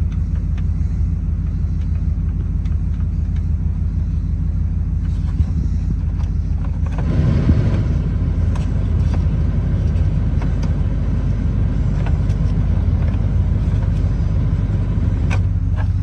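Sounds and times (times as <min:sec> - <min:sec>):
engine idling low rumble: 0:00.0 - 0:16.0.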